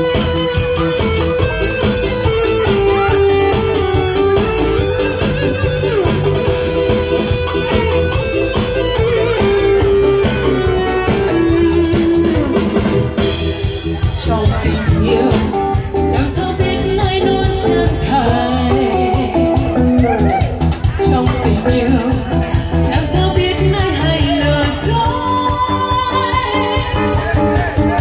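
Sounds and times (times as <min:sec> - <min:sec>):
bass guitar: 0:00.0 - 0:28.0
electric guitar lead melody: 0:00.0 - 0:28.0
steady drum-kit beat: 0:00.0 - 0:28.0.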